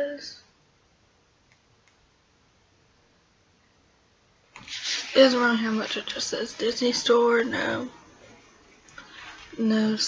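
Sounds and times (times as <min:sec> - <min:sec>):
faint clicks: 0:01.4 - 0:02.0.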